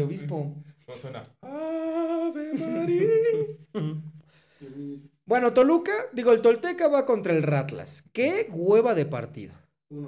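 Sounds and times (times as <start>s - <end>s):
man humming: 1.4s - 5.1s.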